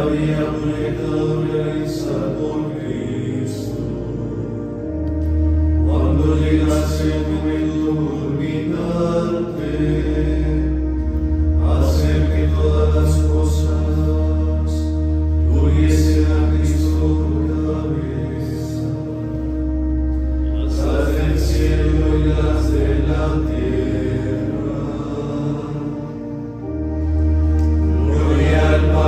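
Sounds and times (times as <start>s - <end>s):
sustained low note: 0.0s - 29.0s
men chanting in unison: 27.9s - 29.0s.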